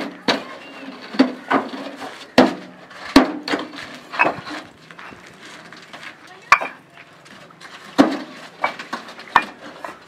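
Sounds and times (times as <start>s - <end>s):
bricks knocking together: 1.1s - 5.2s, 5.9s - 6.8s, 7.8s - 10.0s.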